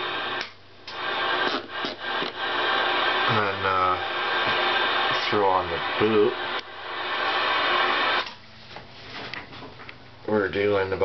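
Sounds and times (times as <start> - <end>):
radio static hissing: 0.0 - 8.5.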